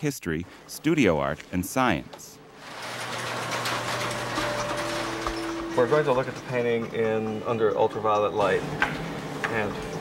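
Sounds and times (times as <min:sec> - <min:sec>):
roller shade motor whirring: 0:02.5 - 0:10.0.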